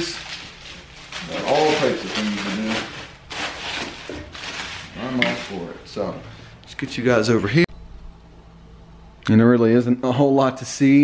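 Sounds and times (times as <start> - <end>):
plastic wrap crinkling: 0.0 - 5.8.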